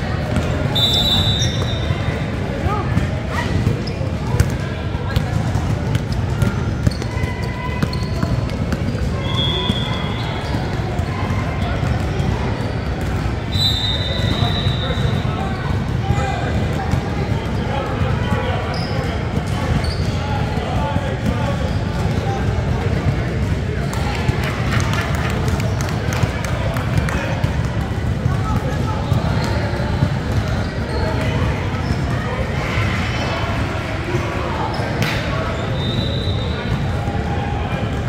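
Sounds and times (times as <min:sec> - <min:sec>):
sneaker squeaks: 0:00.3 - 0:20.5, 0:28.4 - 0:33.3, 0:34.6 - 0:37.0.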